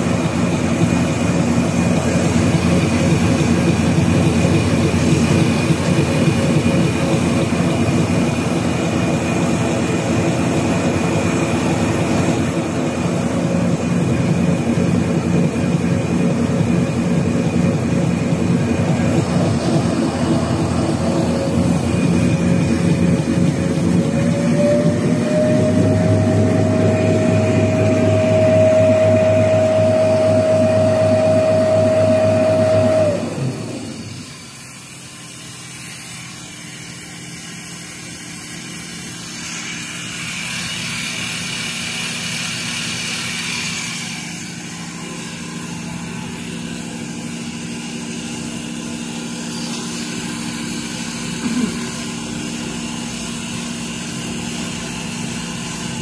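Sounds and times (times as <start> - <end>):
paper machine running: 0.0 - 34.3, 35.0 - 56.0
machine drive whine: 0.0 - 56.0.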